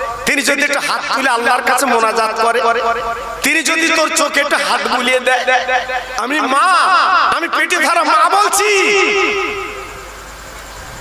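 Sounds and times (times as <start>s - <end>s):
man chanting through loudspeaker: 0.0s - 10.1s
sound system hum: 0.0s - 11.0s.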